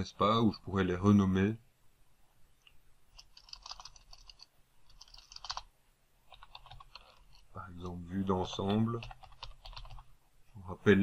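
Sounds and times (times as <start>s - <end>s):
faint keyboard typing: 2.6s - 7.6s, 8.4s - 10.1s.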